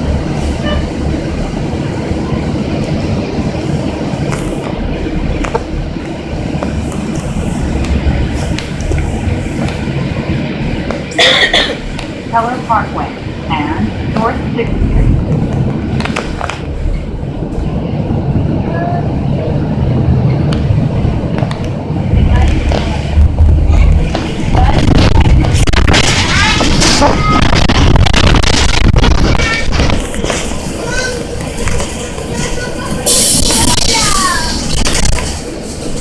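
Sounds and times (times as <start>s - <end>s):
bus engine and road rumble: 0.0s - 36.0s
passengers chattering: 0.0s - 36.0s.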